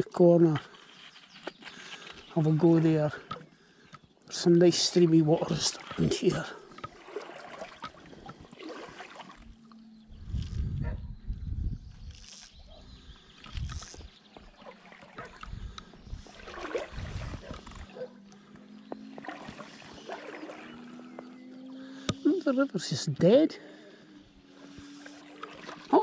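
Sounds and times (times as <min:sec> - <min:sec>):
footsteps on riverbank: 0:00.4 - 0:11.0, 0:11.9 - 0:22.3
faint steady drone: 0:05.3 - 0:10.6, 0:17.8 - 0:26.0.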